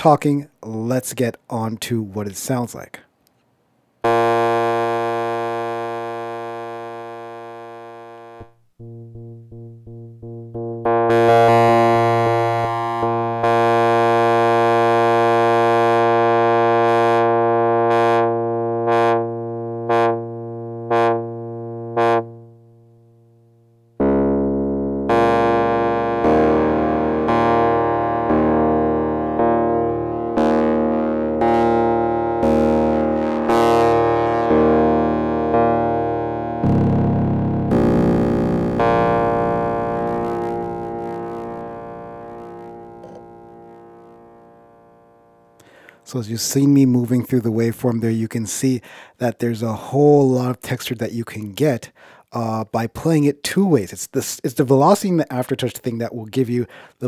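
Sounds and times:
sampler keyboard chords: 0:04.0 - 0:46.2.

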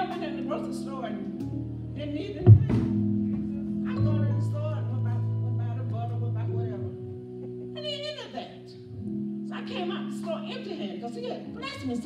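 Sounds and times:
sustained keyboard chords: 0:00.0 - 0:12.0.

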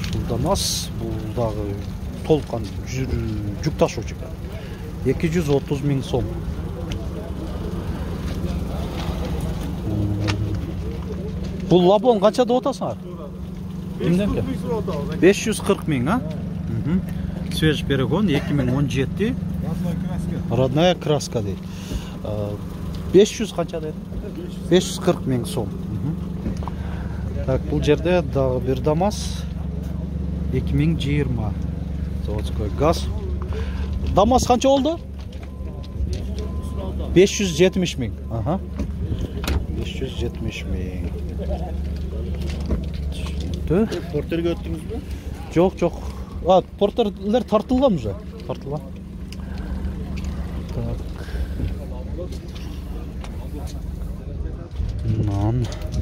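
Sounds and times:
faint voices talking: 0:00.0 - 0:56.0
vehicle engine idling: 0:00.0 - 0:56.0
faint background voices: 0:48.0 - 0:56.0.

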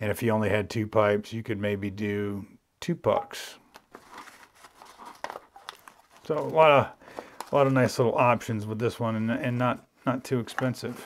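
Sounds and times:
nylon pouch rustling and crinkling: 0:03.8 - 0:08.1.

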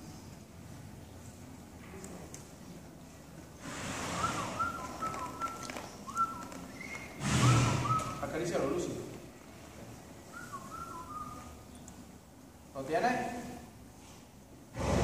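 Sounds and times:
soft whistled notes: 0:04.2 - 0:08.2, 0:10.2 - 0:11.8.

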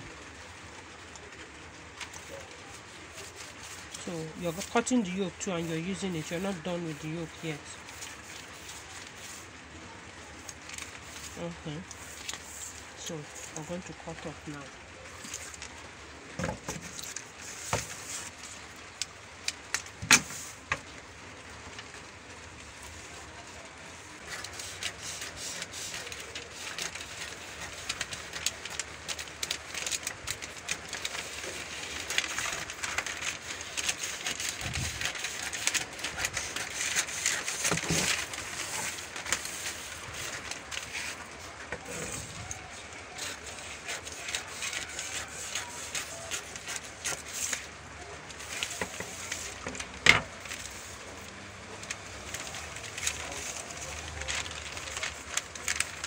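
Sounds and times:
paper rustling and crackling: 0:00.0 - 0:56.0
scissors cutting paper: 0:02.0 - 0:09.5, 0:10.4 - 0:13.7, 0:24.2 - 0:47.7, 0:48.3 - 0:51.0.

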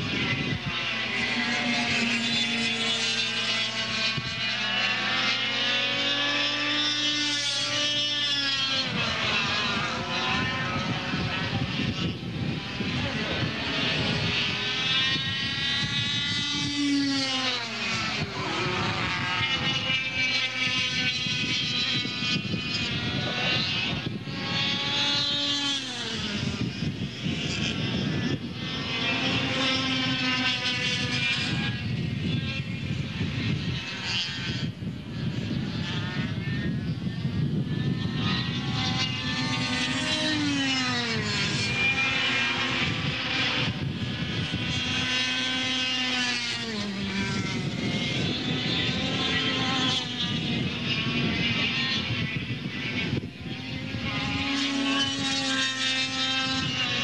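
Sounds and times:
kart engines at high revs: 0:00.0 - 0:57.0.

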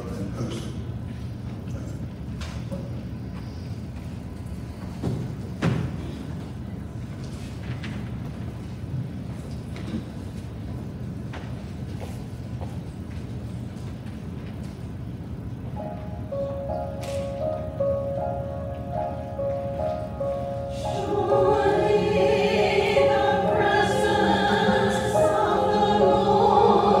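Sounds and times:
music: 0:15.7 - 0:27.0.

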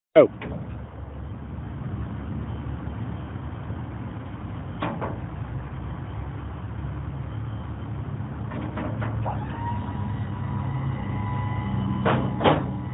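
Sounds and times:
low motor hum: 0:00.3 - 0:12.9
steady high whine: 0:09.2 - 0:12.9
metal clanks: 0:12.0 - 0:12.8.

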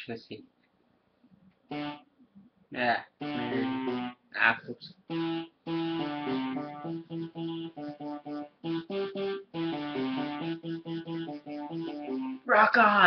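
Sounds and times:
electronic keyboard melody: 0:01.7 - 0:02.1, 0:03.2 - 0:04.2, 0:05.0 - 0:12.5.

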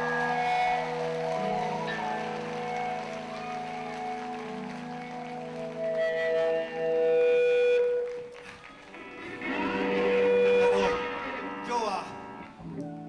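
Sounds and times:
electric guitar and bass sustained notes: 0:00.0 - 0:13.0
faint applause: 0:00.0 - 0:13.0.

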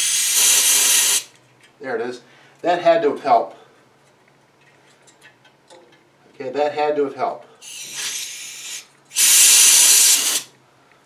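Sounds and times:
compressed air can spraying: 0:00.0 - 0:01.3, 0:07.6 - 0:10.5.

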